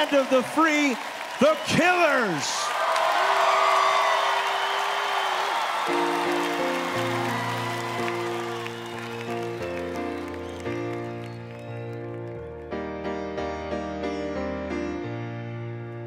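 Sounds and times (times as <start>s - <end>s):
audience cheering and applauding: 0.0s - 13.0s
grand piano slow chords: 6.1s - 16.0s.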